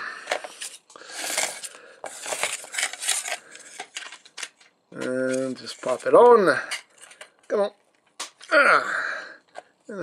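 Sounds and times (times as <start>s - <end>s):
plastic parts scraping: 0.2s - 7.6s.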